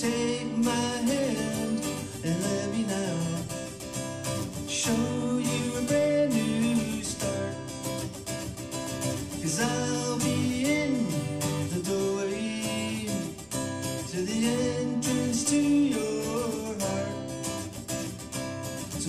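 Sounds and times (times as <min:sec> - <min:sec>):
wordless vocal line: 0:00.0 - 0:07.9, 0:09.3 - 0:17.6
acoustic guitar strumming: 0:00.0 - 0:19.0.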